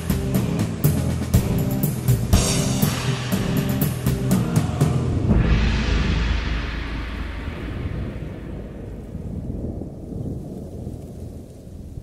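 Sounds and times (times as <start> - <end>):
rain falling: 0.0 - 12.0
thunder rumbling: 1.4 - 12.0.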